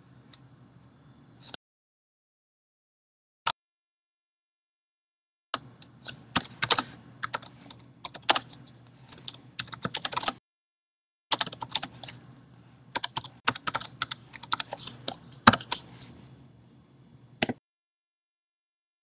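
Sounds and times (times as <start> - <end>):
faint low hum: 0.0 - 1.6, 11.5 - 17.4
typing on computer keyboard: 6.1 - 10.4, 11.3 - 12.2, 13.0 - 15.8.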